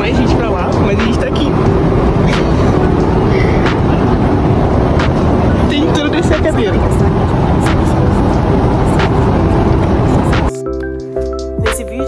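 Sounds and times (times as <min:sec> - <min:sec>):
airliner engine rumble: 0:00.0 - 0:12.0.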